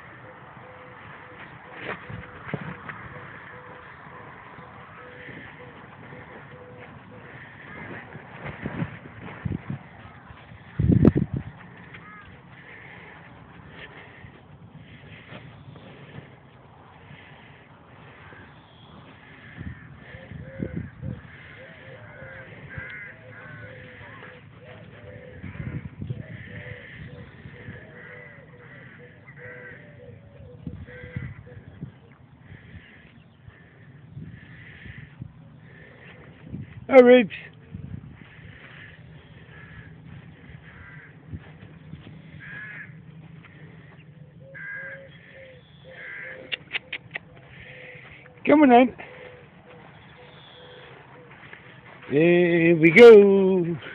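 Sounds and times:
bird calls: 0.0 - 53.9
dull low thumps: 7.6 - 12.0.

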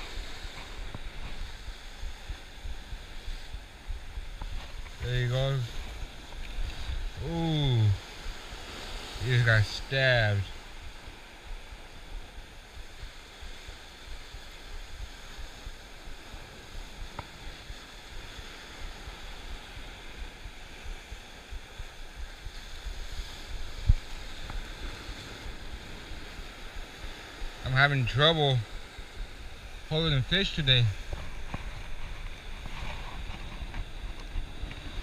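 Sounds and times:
surf washing against rocks: 0.0 - 35.0
wind rumbling on microphone: 0.0 - 35.0.

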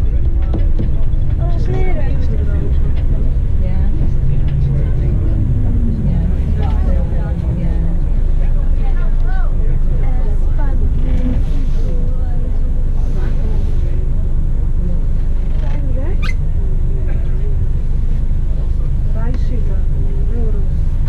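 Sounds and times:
coach engine and road noise: 0.0 - 21.0
indistinct passengers talking: 0.0 - 21.0.

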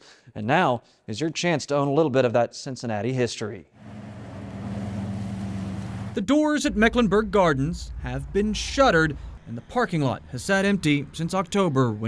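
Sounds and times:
low motor hum: 3.8 - 9.5
even wash of noise: 3.8 - 10.6.

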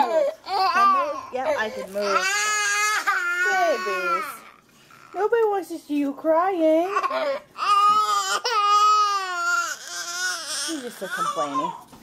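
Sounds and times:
toddler crying: 0.0 - 5.3, 6.8 - 11.8.

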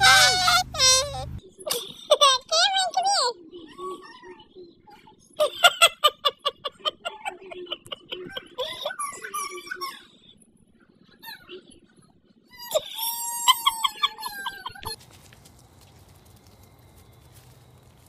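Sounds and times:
toddler squealing and laughing: 0.0 - 1.3, 12.6 - 15.0
faint background noise: 0.0 - 18.0.

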